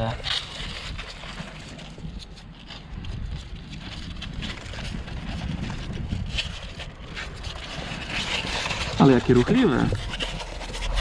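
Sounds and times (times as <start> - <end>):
rabbits rustling in cardboard box: 0.0 - 11.0
wind buffeting microphone: 0.0 - 11.0.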